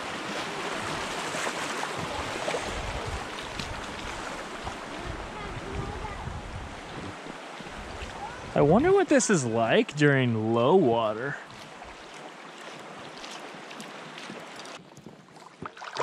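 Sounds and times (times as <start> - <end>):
river water rushing around boat: 0.0 - 16.0.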